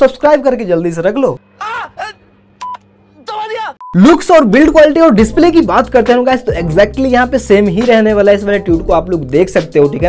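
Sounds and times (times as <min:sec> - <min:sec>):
film dialogue: 0:00.0 - 0:09.2.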